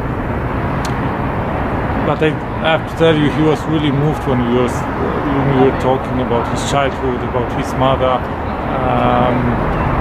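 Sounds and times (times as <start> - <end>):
urban traffic rumble: 0.0 - 10.0.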